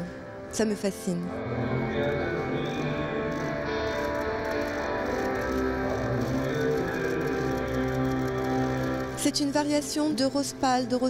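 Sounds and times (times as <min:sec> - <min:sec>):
guitar music: 0:00.0 - 0:11.0.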